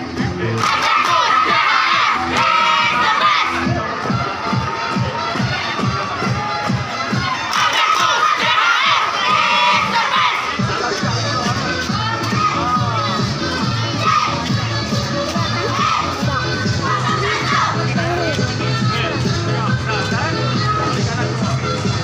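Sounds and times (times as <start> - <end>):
crowd shouting and cheering: 0.0 - 22.0
music with steady beat: 0.0 - 22.0.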